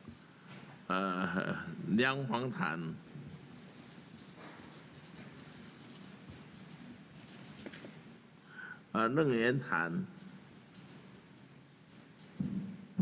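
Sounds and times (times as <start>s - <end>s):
marker writing on a board: 3.3s - 8.0s, 10.1s - 12.6s.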